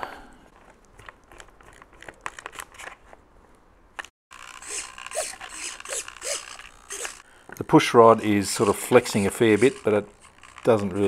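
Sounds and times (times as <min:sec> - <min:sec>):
servo whirring: 0:04.3 - 0:11.0.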